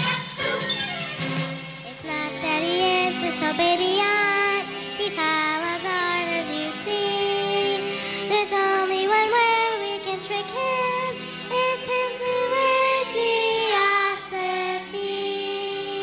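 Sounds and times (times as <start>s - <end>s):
musical accompaniment: 0.0s - 16.0s
girl singing into microphone: 2.0s - 16.0s.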